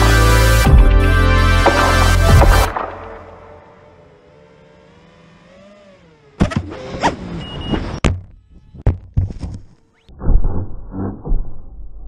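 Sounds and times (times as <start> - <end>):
drone motors whining: 0.0 - 10.2
drone crash impact: 1.6 - 3.8.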